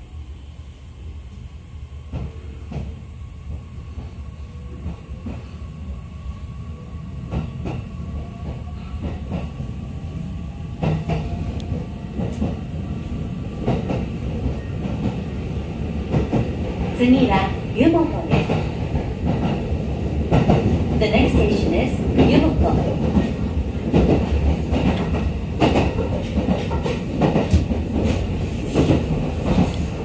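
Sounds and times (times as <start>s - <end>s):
train running rumble: 7.2s - 30.0s.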